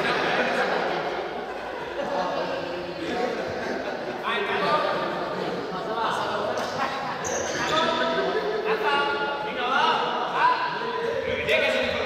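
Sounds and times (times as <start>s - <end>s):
young people chattering and calling: 0.0s - 12.0s.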